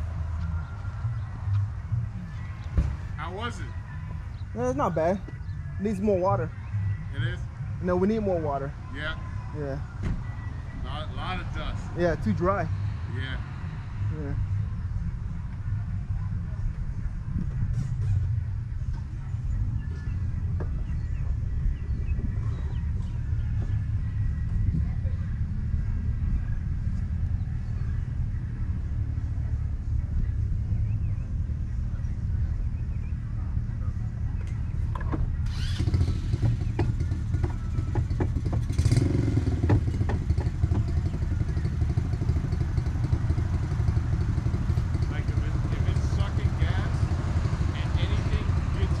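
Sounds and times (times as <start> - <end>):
off-road vehicle engine running: 0.0 - 49.0.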